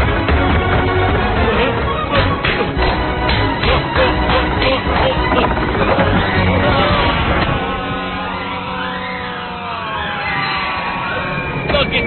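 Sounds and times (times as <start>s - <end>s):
film score with percussive beat: 0.0s - 7.7s.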